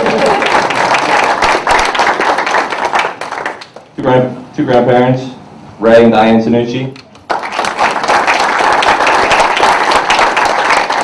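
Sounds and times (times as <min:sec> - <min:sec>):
audience applauding: 0:00.0 - 0:03.9, 0:07.2 - 0:11.0.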